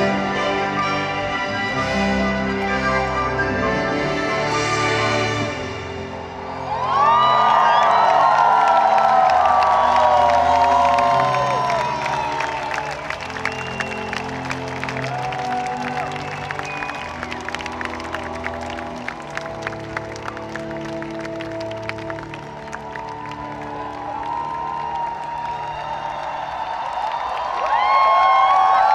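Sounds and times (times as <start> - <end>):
crowd clapping and cheering: 0.0 - 28.9.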